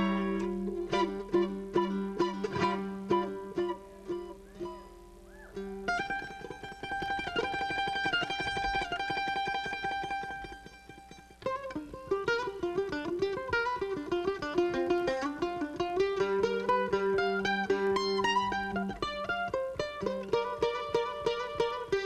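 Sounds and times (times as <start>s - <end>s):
mandolin tremolo and picking: 0.0s - 22.0s.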